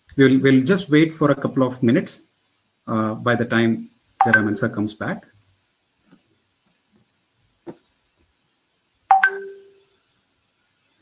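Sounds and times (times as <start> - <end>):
electronic notification chime: 4.2 - 4.6, 9.1 - 9.8.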